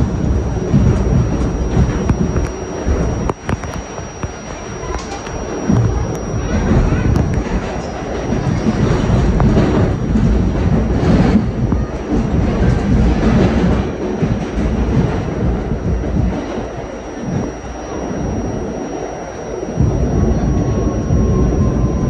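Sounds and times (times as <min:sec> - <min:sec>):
subway train rumbling through tunnel: 0:00.0 - 0:22.0.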